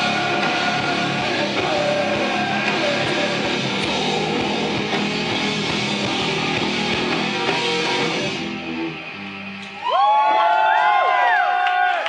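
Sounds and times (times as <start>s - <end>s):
audience cheering and whooping: 9.6s - 12.0s.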